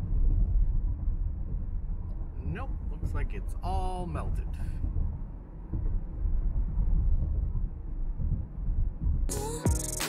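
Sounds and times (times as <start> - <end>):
car cabin road rumble: 0.0 - 9.3.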